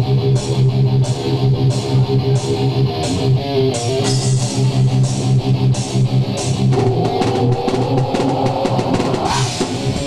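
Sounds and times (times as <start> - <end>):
rock band playing heavy rock: 0.0 - 10.0.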